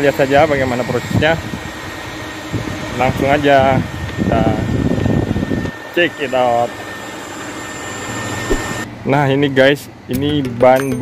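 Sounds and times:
faint high whine: 2.9 - 9.8
low hum: 8.0 - 9.3.

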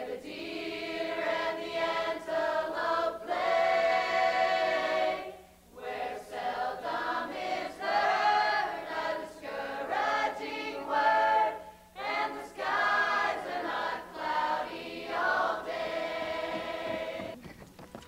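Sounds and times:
choir singing: 0.0 - 17.4.

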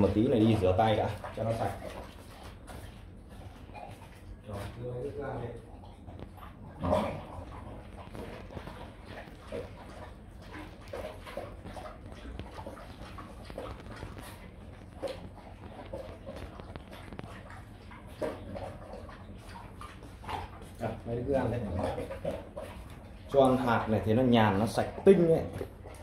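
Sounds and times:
dogs chewing and lapping: 0.0 - 26.0.

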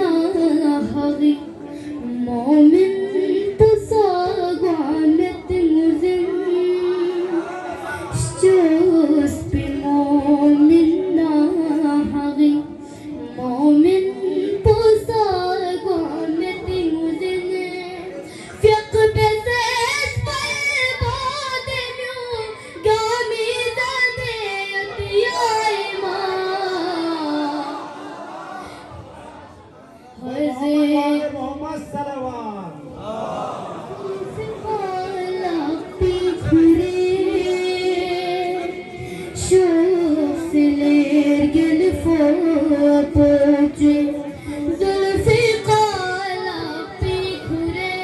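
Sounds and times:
boy singing into a microphone: 0.0 - 29.1, 30.0 - 32.0, 34.0 - 48.0.

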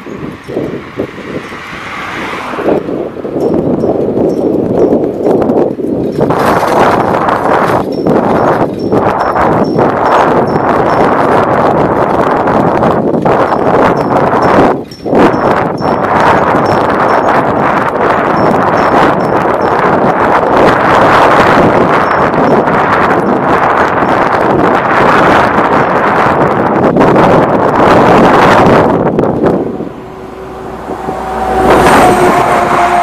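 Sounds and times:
wind and road noise: 0.0 - 33.0.

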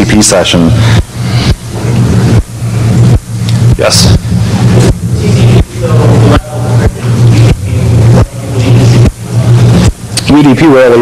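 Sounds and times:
electrical hum and hiss: 0.0 - 11.0.

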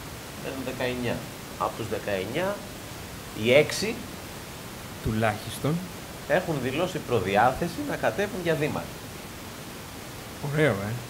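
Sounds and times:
steady background hiss: 0.0 - 11.0
man speaking: 0.4 - 2.7, 3.4 - 4.1, 5.0 - 9.0, 10.4 - 11.0.

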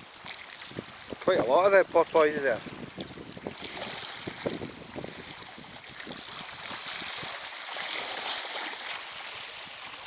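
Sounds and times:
wind blowing on microphone: 0.2 - 7.6.

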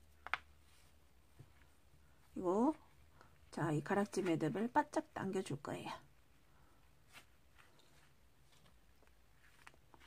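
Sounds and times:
faint rustle of cord: 0.0 - 4.6, 6.1 - 10.0.

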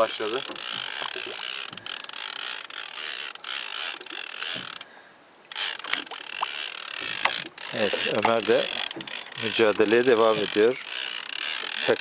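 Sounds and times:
fishing reel being cranked: 0.0 - 4.9, 5.5 - 12.0.

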